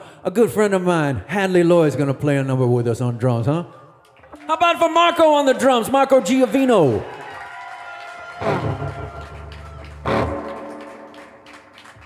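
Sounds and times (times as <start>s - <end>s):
electric guitar notes ringing: 8.4s - 11.5s.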